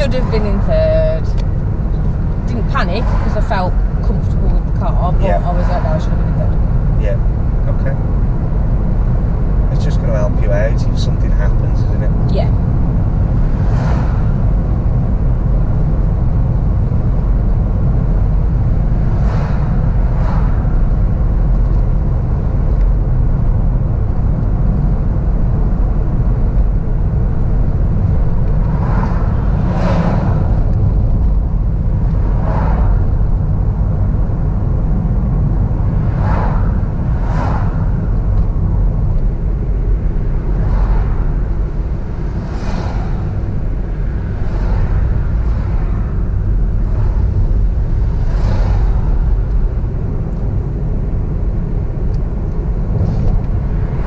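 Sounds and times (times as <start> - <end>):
car driving rumble: 0.0 - 54.0.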